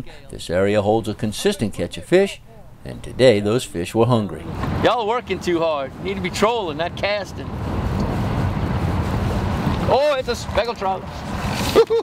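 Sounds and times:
wind rumble: 0:04.0 - 0:12.0
boat noise on choppy water: 0:04.3 - 0:12.0.

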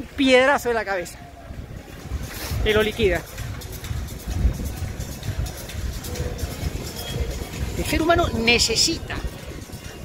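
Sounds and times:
street traffic: 0:00.0 - 0:10.0
wind buffeting microphone: 0:01.2 - 0:10.0.

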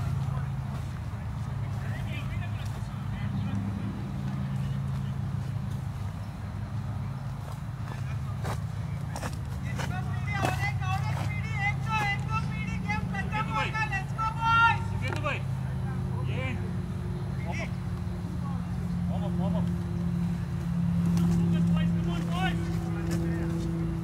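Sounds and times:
players calling out: 0:00.0 - 0:24.0
steady low hum: 0:00.0 - 0:24.0.

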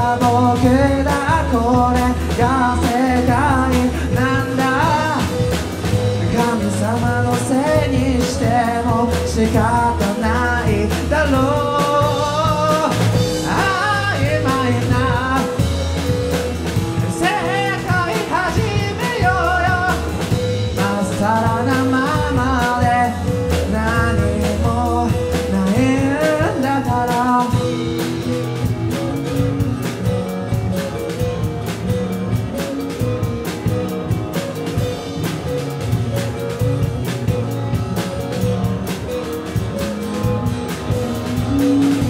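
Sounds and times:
man singing: 0:00.0 - 0:16.2, 0:16.9 - 0:29.4, 0:40.2 - 0:42.0
acoustic-electric guitar: 0:00.0 - 0:42.0
bass guitar: 0:00.0 - 0:42.0
drum kit: 0:00.0 - 0:42.0
electric guitar: 0:00.0 - 0:42.0.

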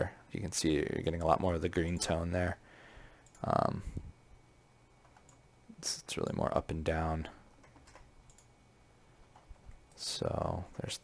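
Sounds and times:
computer mouse clicks: 0:03.2 - 0:03.5, 0:07.6 - 0:08.5.

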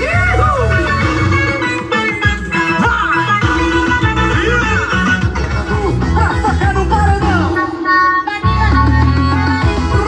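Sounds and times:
loud music with heavy bass: 0:00.0 - 0:10.0.

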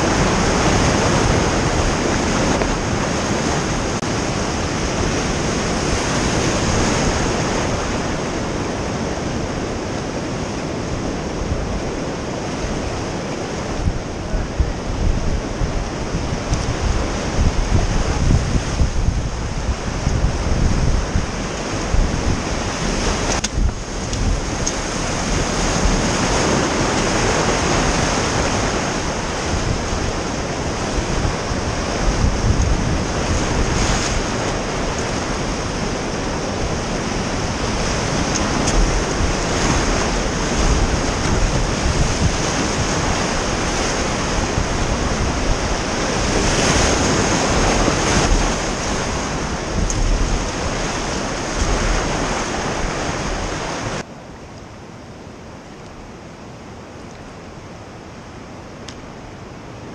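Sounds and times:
whitewater rapids rushing: 0:00.0 - 0:54.0.

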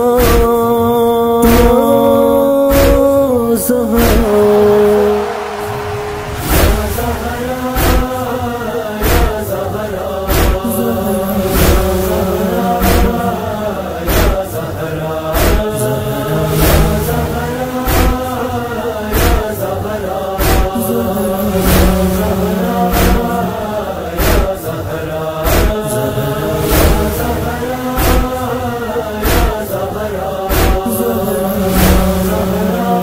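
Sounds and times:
chorus of voices chanting: 0:00.0 - 0:33.0
rhythmic chest-beating thumps: 0:00.1 - 0:00.7, 0:01.4 - 0:02.0, 0:02.7 - 0:03.2, 0:04.0 - 0:33.0.

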